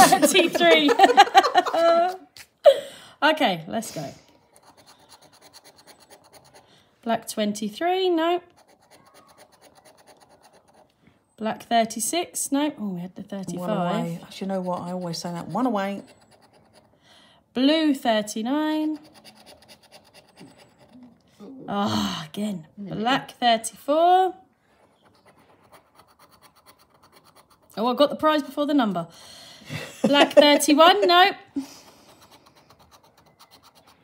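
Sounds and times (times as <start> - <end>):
plastic chip scraping scratchcard: 4.4 - 6.7, 8.4 - 10.9, 14.1 - 17.0, 18.8 - 21.0, 24.8 - 27.7, 31.9 - 34.0.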